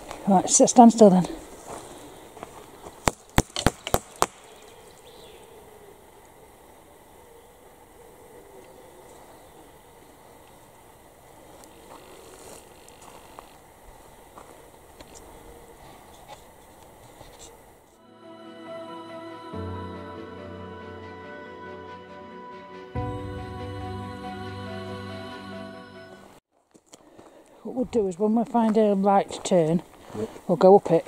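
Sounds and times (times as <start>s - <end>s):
music: 18.0s - 26.4s.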